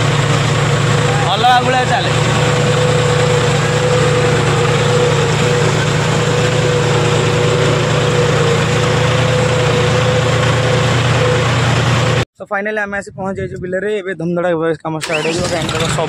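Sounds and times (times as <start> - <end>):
tractor engine under load: 0.0 - 12.2, 15.0 - 16.0
wheels churning muddy water: 0.0 - 12.2, 15.0 - 16.0.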